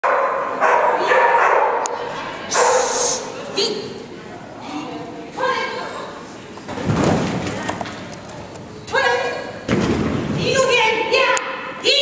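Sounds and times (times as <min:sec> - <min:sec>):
dog barking excitedly: 0:00.0 - 0:01.9, 0:02.5 - 0:02.9.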